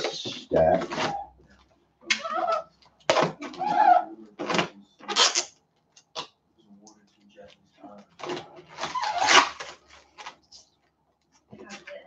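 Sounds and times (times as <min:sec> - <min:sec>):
plastic film being peeled off: 0:08.7 - 0:10.4.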